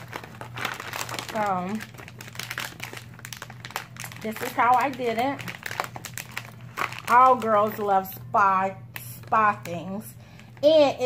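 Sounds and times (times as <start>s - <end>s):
plastic packaging crinkling: 0.0s - 8.1s, 8.9s - 11.0s.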